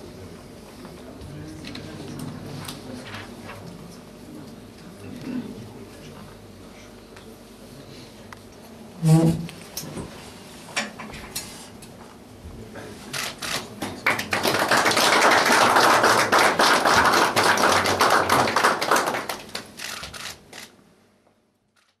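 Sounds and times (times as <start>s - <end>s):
small audience applauding: 13.4s - 20.3s.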